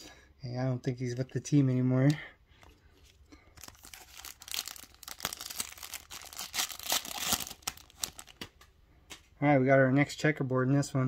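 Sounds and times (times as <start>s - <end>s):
foil wrapper tearing and crinkling: 3.6s - 8.4s.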